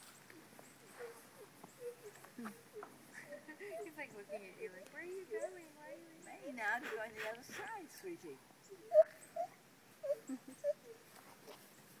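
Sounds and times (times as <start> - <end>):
gibbon squeaking calls: 8.7 - 11.0.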